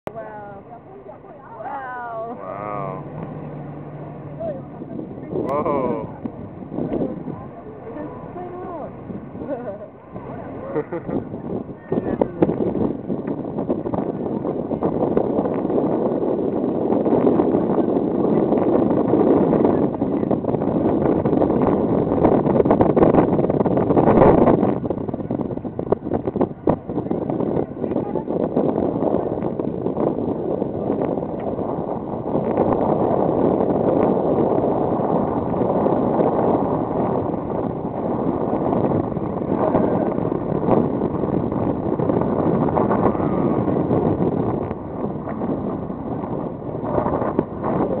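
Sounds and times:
boat noise: 0:00.0 - 0:48.0
wind buffeting microphone: 0:00.0 - 0:48.0.

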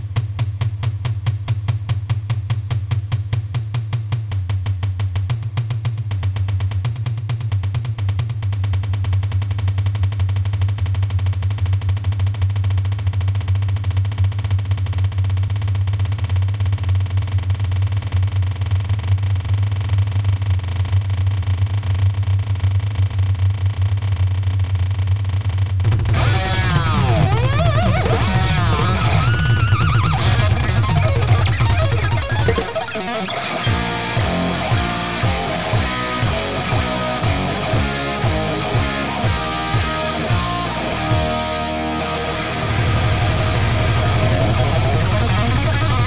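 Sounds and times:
rapid double bass drum pounding: 0:00.0 - 0:21.4, 0:22.0 - 0:33.0, 0:33.7 - 0:46.0.

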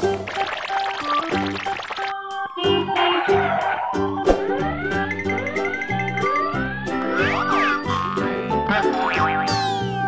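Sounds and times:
playful children's music: 0:00.0 - 0:10.0.

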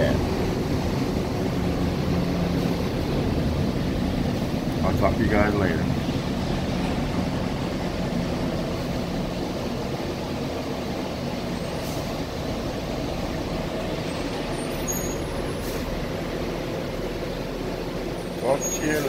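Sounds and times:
bus engine drone: 0:00.0 - 0:19.0
road rumble: 0:00.0 - 0:19.0.

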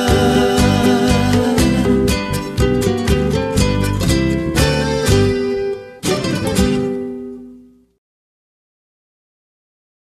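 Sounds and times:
guitar chords strummed: 0:00.0 - 0:08.0.

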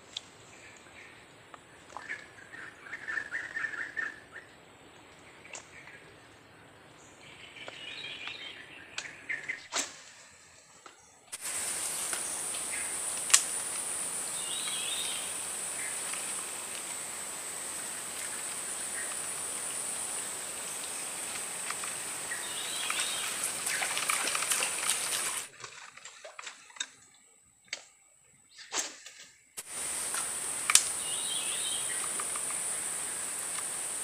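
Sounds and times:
high-pitched drone with hiss: 0:11.4 - 0:25.5, 0:29.6 - 0:34.0
bird chirps: 0:14.1 - 0:16.5.

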